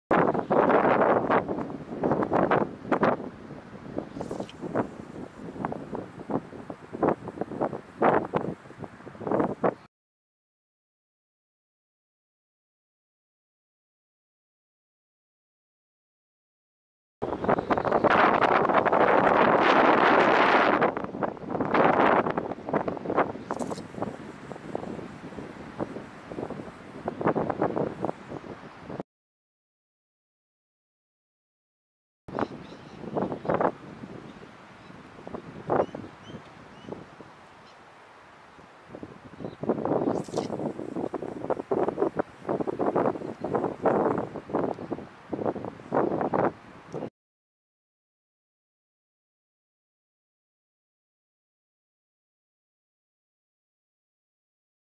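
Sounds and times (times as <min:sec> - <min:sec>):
wind buffeting microphone: 0:00.1 - 0:09.9, 0:17.2 - 0:29.0, 0:32.3 - 0:37.5, 0:38.9 - 0:47.1.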